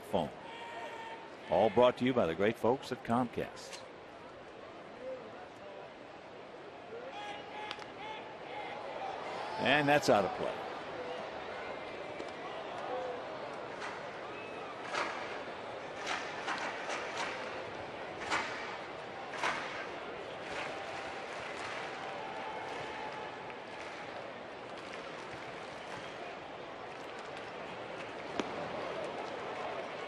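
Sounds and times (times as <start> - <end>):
crowd murmur: 3.9 - 30.0
people clapping: 19.3 - 26.2, 26.8 - 30.0.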